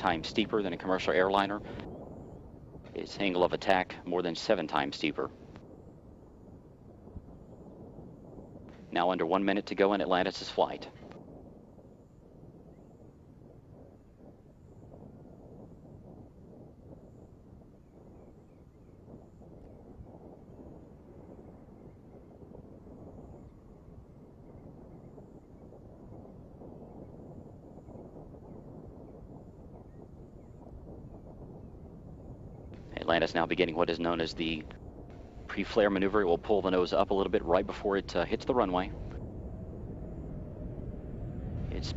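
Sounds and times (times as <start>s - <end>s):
wind rumble on microphone: 0.0s - 41.9s.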